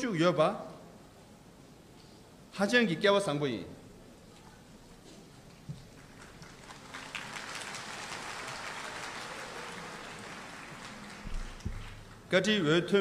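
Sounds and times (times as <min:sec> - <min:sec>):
audience applauding: 0:05.9 - 0:12.3.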